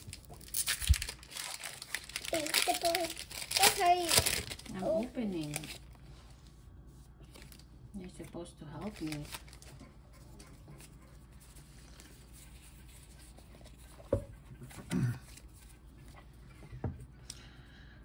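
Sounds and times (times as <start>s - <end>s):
trading cards being handled: 8.8s - 9.8s.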